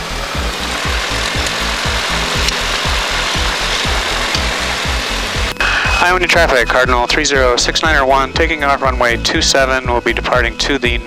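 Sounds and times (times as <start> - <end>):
propeller plane engine drone: 0.0 - 9.4.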